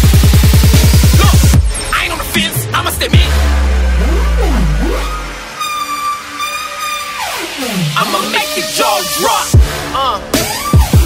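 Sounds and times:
deep bass note: 1.1 - 5.6
falling synth sweeps: 2.9 - 9.6.

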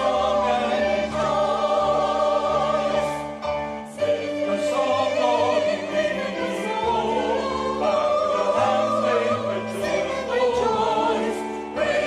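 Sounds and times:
choir singing in parts: 0.0 - 12.0
piano accompaniment: 0.0 - 12.0.

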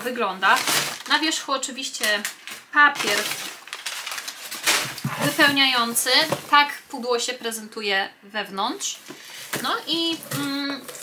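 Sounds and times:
packing paper rustling and crinkling: 0.4 - 1.4, 2.0 - 6.7, 9.2 - 11.0.

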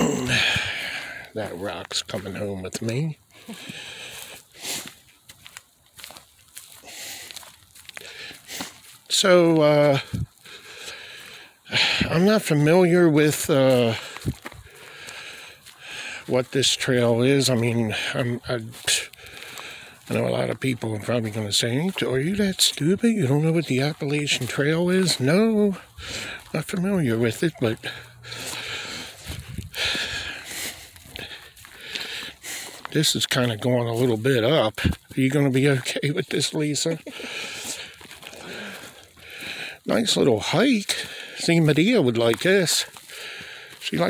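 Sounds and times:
breathy inhale: 0.0 - 1.3, 3.3 - 4.9, 10.4 - 12.1, 14.0 - 16.2, 19.2 - 20.0, 26.0 - 26.4, 27.8 - 32.8, 37.1 - 39.8, 43.1 - 43.8
man talking: 0.0 - 3.2, 9.1 - 10.3, 11.7 - 14.2, 16.2 - 19.2, 20.0 - 28.6, 32.8 - 38.7, 39.8 - 43.0, 43.8 - 44.0
footsteps crunching through dry leaves: 0.0 - 44.0.

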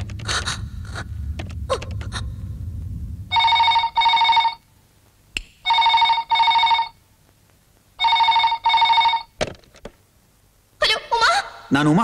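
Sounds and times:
telephone ringing in double rings: 3.4 - 4.6, 5.7 - 7.0, 8.0 - 9.4.

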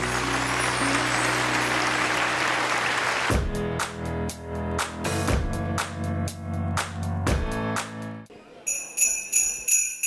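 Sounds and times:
audience applauding: 0.0 - 3.9.

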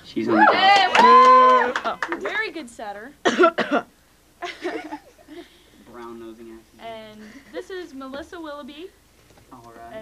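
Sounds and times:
person coughing: 3.2 - 3.9.

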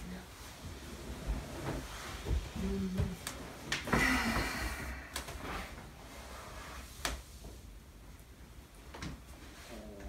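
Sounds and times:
clothing and blanket rustling: 0.0 - 10.0
person humming low: 2.5 - 3.2.

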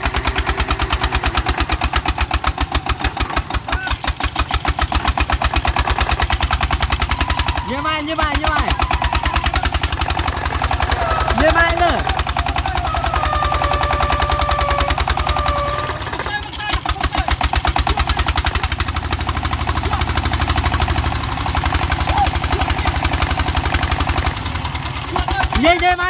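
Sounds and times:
diesel engine chugging under load: 0.0 - 26.0
person shouting a long note: 8.7 - 11.8, 12.7 - 16.3.

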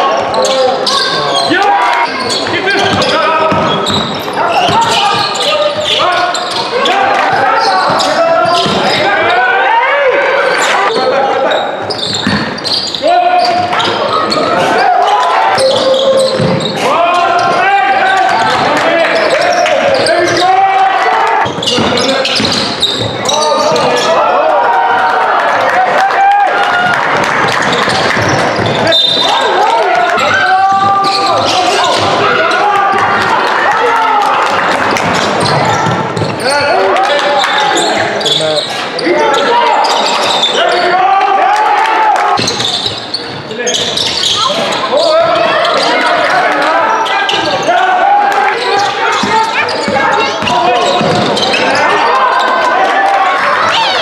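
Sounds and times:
voices calling out: 0.0 - 54.0
basketball bouncing on wooden court: 2.4 - 6.6, 7.3 - 9.0, 11.9 - 12.8, 15.5 - 16.8, 21.4 - 23.9, 26.8 - 29.2, 30.1 - 32.3, 34.9 - 36.4, 48.8 - 51.8.

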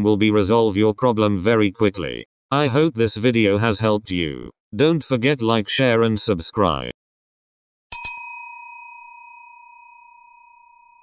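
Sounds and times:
bell-like ding: 7.9 - 11.0.

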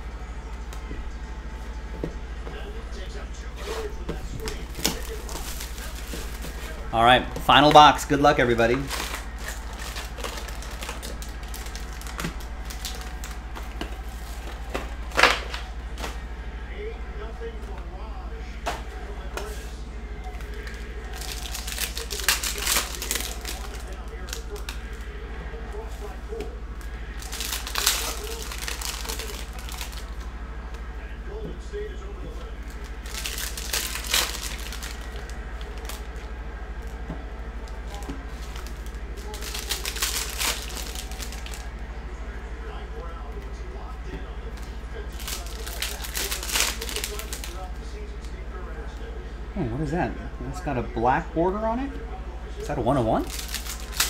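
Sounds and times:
steady low hum: 0.0 - 54.0
cards shuffling: 3.6 - 16.2, 20.3 - 25.1, 26.3 - 30.8, 32.6 - 37.0, 37.6 - 41.7, 44.5 - 47.6, 53.2 - 54.0
wrapper crinkling and tearing: 4.4 - 16.0, 20.3 - 25.1, 26.8 - 30.2, 32.7 - 36.2, 37.6 - 41.7, 45.0 - 47.7, 53.2 - 54.0.

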